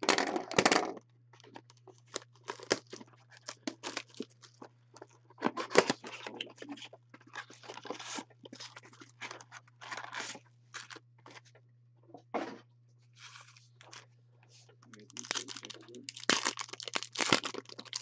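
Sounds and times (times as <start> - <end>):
plastic wrapper crinkling and tearing: 1.8 - 11.0, 14.9 - 18.0.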